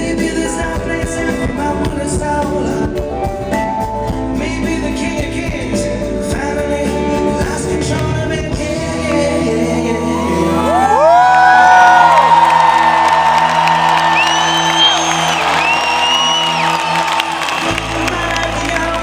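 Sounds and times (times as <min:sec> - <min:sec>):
live band playing chords: 0:00.0 - 0:19.0
audience whooping and cheering: 0:10.0 - 0:19.0.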